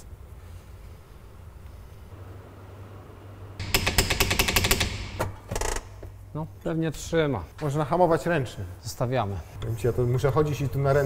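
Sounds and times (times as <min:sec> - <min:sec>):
low steady hum: 0:00.0 - 0:04.2
rapid mechanical rattling: 0:03.6 - 0:05.2.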